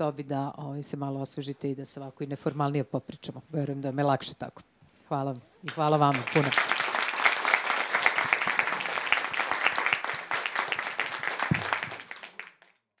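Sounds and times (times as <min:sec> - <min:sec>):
audience applauding: 0:06.1 - 0:12.8.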